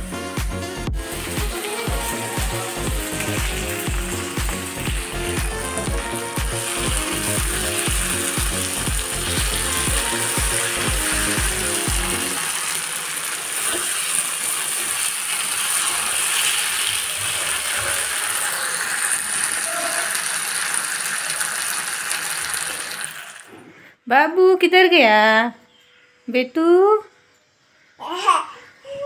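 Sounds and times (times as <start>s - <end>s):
background music with a beat: 0.0s - 12.4s
vegetables sizzling in an iron pan: 1.0s - 23.4s.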